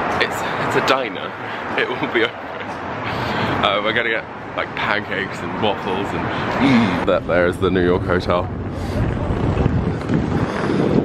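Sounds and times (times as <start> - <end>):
city street traffic: 0.0 - 11.0
wind buffeting microphone: 5.3 - 11.0.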